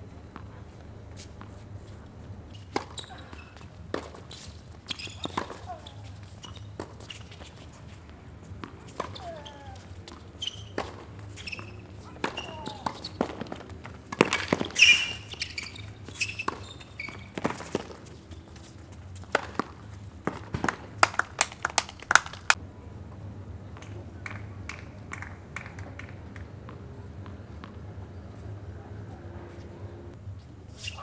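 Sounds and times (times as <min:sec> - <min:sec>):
shoe squeaks: 0:00.5 - 0:19.7, 0:30.4 - 0:31.0
rackets striking tennis ball: 0:01.2 - 0:22.6
ball bouncing: 0:02.5 - 0:07.4, 0:08.5 - 0:22.3
player shouting: 0:05.2 - 0:06.1, 0:09.1 - 0:09.9, 0:12.0 - 0:13.0.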